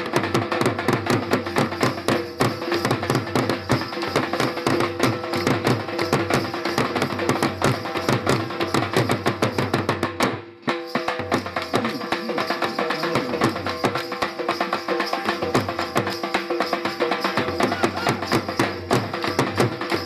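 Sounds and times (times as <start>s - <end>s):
dhol drums fast rhythm: 0.0s - 20.0s.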